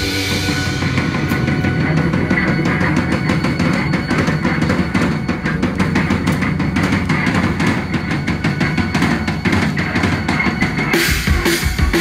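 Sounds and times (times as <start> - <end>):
drum kit hits: 0.0 - 12.0
live rock band: 0.0 - 12.0.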